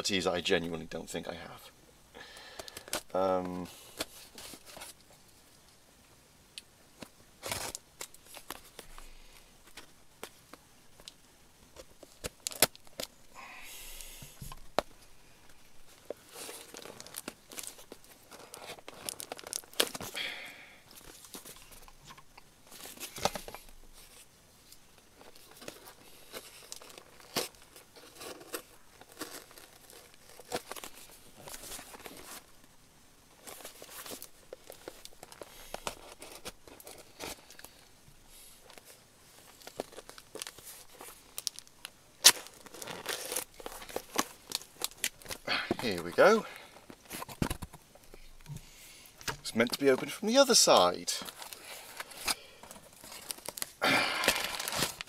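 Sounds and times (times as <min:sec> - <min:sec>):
paper crinkling and rustling: 0:02.6 - 0:05.2, 0:07.0 - 0:13.2, 0:15.8 - 0:20.2, 0:20.9 - 0:32.7, 0:33.3 - 0:48.6, 0:49.2 - 0:55.0
cardboard tearing: 0:16.3 - 0:20.2, 0:25.2 - 0:32.5, 0:42.2 - 0:46.4, 0:51.3 - 0:55.0.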